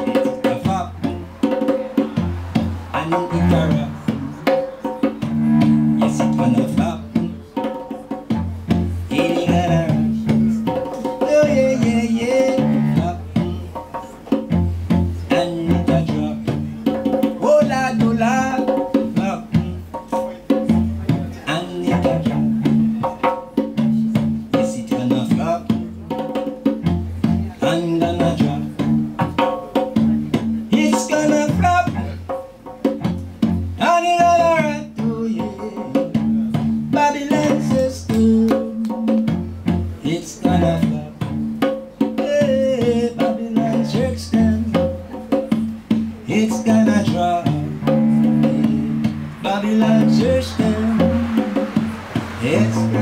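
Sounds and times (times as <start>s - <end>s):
cello melody: 0.0s - 7.5s, 8.2s - 16.8s, 37.6s - 41.6s, 45.6s - 53.0s
hand drum beating: 0.0s - 53.0s.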